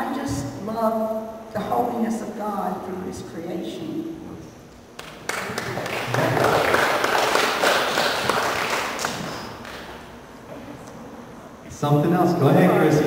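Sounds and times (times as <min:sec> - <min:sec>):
crowd applauding: 0:05.0 - 0:10.0.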